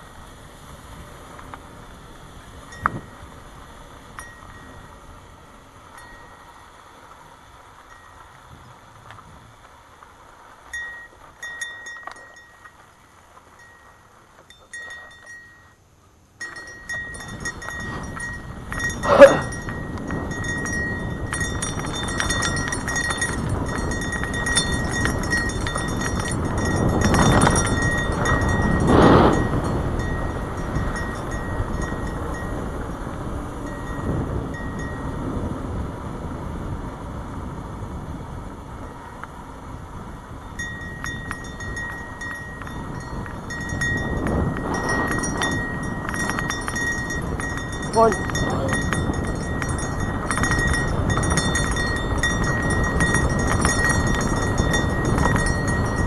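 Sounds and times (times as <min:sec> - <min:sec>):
wind rushing over camera: 0:00.0 - 0:15.6, 0:16.2 - 0:56.0
bike rattling: 0:00.0 - 0:56.0
bike tyres rolling on dirt trail: 0:00.0 - 0:56.0.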